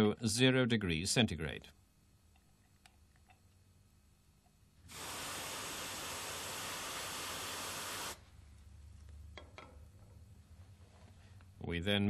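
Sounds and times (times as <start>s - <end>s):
aerosol freeze spray hissing: 4.9s - 8.2s.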